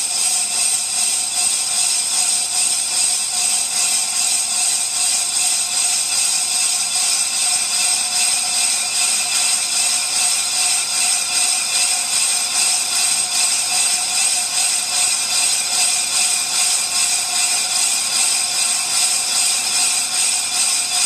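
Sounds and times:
brake lathe cutting metal drum: 0.1 - 21.0.

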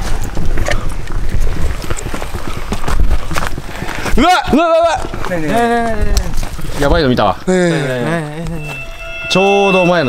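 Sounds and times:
footsteps on rough ground: 0.0 - 9.1.

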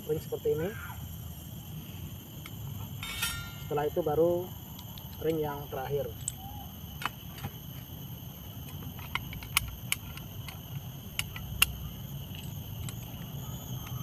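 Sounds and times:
metal clicks and clinks: 3.0 - 3.9.

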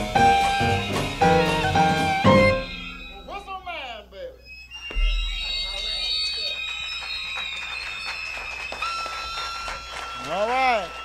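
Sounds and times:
downward-sliding whistle notes: 0.2 - 3.8, 4.4 - 11.0
high alarm-like whistle tone: 0.5 - 11.0.

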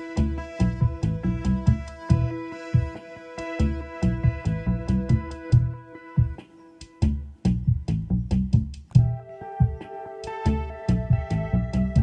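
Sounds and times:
synth pad chord: 0.0 - 6.8
drum machine beat: 0.0 - 12.0
pulsing synth bassline: 0.0 - 12.0.

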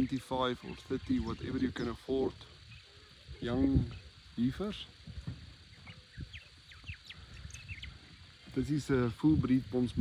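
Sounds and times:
bird chirps: 0.0 - 9.2.

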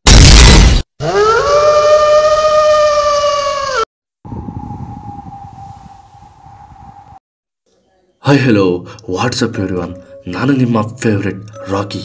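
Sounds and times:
siren-like wail: 1.0 - 7.2.

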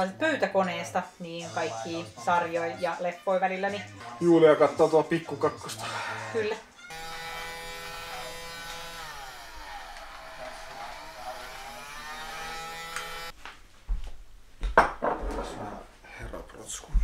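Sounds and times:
toy vacuum motor whine: 6.9 - 13.3.

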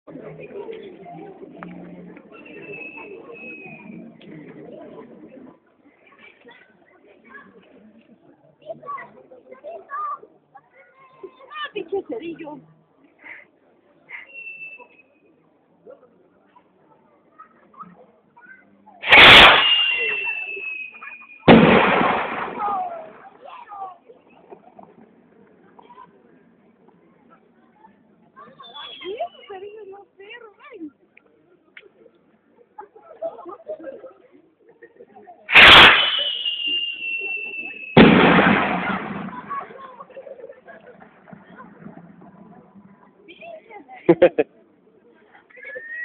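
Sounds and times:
voices: 0.0 - 46.0
thin high whistle: 2.4 - 4.0, 14.1 - 15.1, 19.0 - 21.5, 28.6 - 29.6, 35.5 - 38.0
firework rocket bangs: 19.0 - 20.8, 21.5 - 23.0, 35.5 - 39.7.

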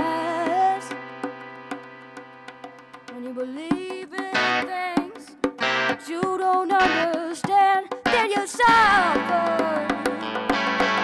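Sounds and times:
boy singing into a microphone: 0.0 - 1.1, 3.1 - 10.5.

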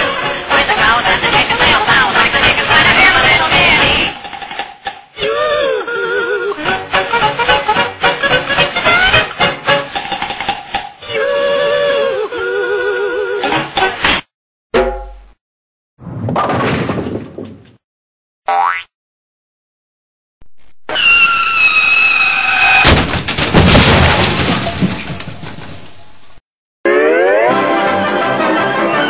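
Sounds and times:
clatter and crashing: 16.3 - 17.8, 22.8 - 26.4
comedy music: 26.9 - 29.0.

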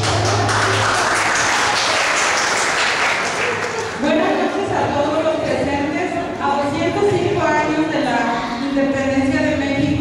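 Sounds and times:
audience applauding: 0.0 - 4.0.

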